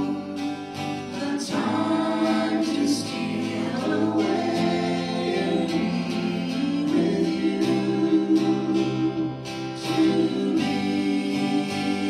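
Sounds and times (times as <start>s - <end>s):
group singing worship song: 0.0s - 12.0s
strummed acoustic guitar: 0.0s - 12.0s.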